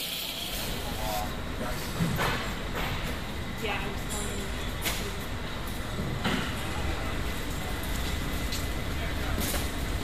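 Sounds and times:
indistinct voices of many people: 0:00.0 - 0:10.0
low rumble of echoing hall: 0:00.2 - 0:10.0.

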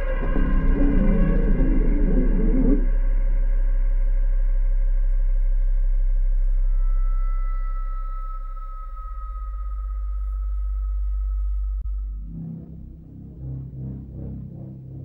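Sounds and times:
deep bass drone: 0:00.0 - 0:15.0
dense low-mid texture: 0:00.0 - 0:15.0.

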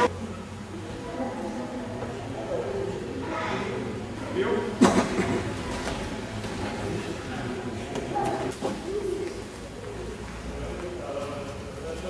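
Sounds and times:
indistinct voices talking: 0:00.0 - 0:04.2.

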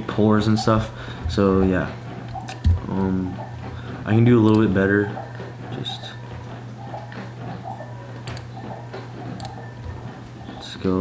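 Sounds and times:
steady low hum: 0:00.0 - 0:11.0
computer mouse clicks: 0:04.4 - 0:04.7, 0:08.2 - 0:09.7.

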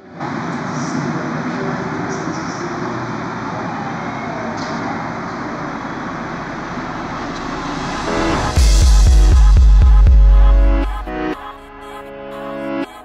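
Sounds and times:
low rumbling noise: 0:00.0 - 0:11.3.

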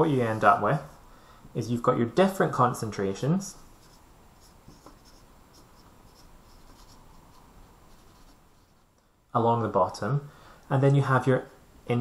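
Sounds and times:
marker writing on whiteboard: 0:03.5 - 0:08.9.

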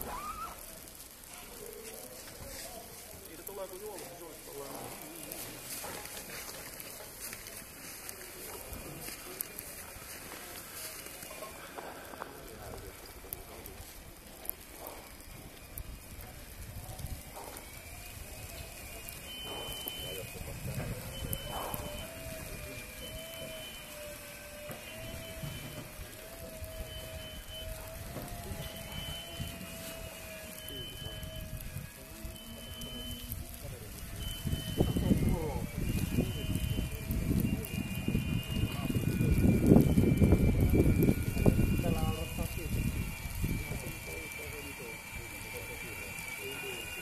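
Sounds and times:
wavering machine whine: 0:05.7 - 0:47.0.

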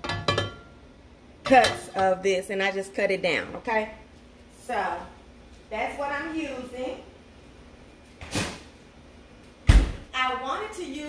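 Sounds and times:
loud deep thump: 0:09.7 - 0:10.1.

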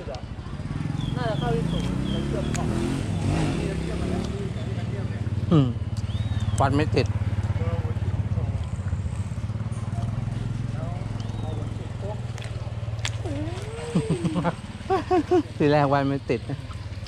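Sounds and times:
faint voices: 0:09.8 - 0:14.6.

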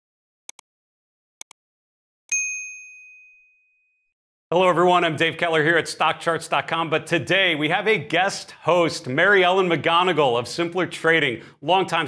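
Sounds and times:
notification bell ding: 0:02.3 - 0:03.8.

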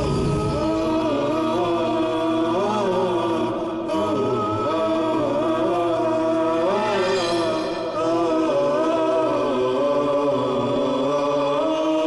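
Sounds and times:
chanted vocals: 0:00.0 - 0:12.0.

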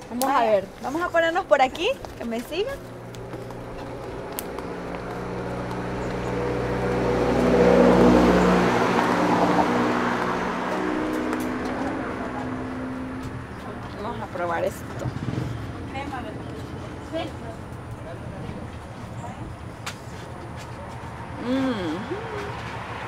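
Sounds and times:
vehicle passing by: 0:00.0 - 0:23.0.

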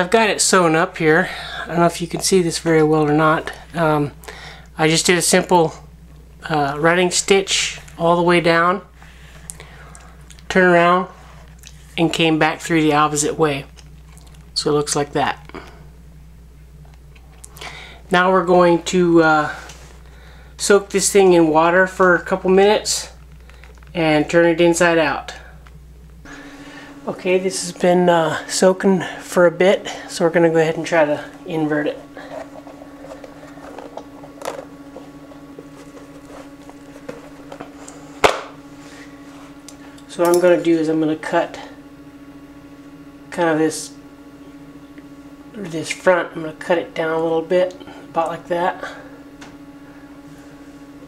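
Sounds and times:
low electrical hum: 0:00.0 - 0:51.0
soft leather handling: 0:31.9 - 0:38.2.

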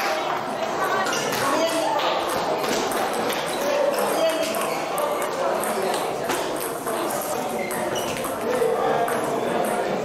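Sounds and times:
voices in a hall: 0:00.0 - 0:10.0
ball bouncing on table: 0:01.3 - 0:07.0, 0:07.7 - 0:09.8.

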